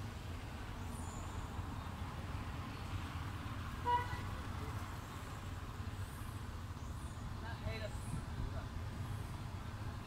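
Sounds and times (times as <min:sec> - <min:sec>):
distant traffic rumble: 0:00.0 - 0:10.0
vehicle horn toot: 0:03.8 - 0:04.3.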